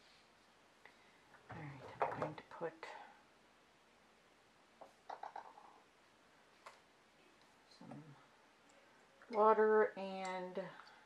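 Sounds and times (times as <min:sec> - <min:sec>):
plastic bottles clicking and tapping: 0:04.8 - 0:05.8.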